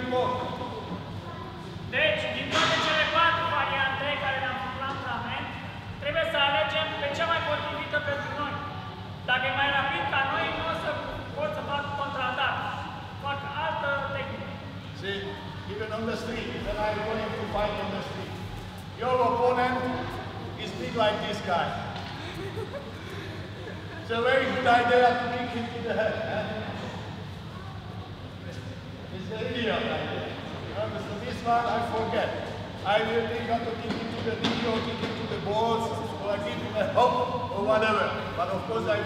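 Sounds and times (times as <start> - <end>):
man talking in echoing hall: 0.0 - 1.0, 1.8 - 22.0, 23.4 - 27.2, 28.4 - 39.0.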